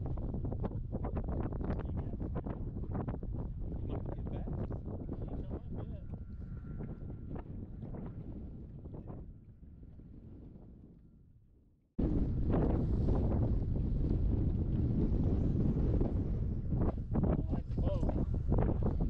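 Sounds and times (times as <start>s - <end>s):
wind buffeting microphone: 0.0s - 11.2s, 12.0s - 19.0s.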